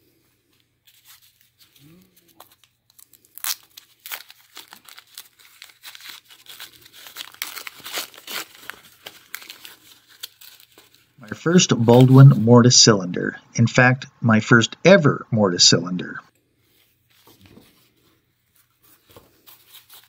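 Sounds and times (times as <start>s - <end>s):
paper crinkling and tearing: 0.8s - 11.2s, 17.1s - 20.0s.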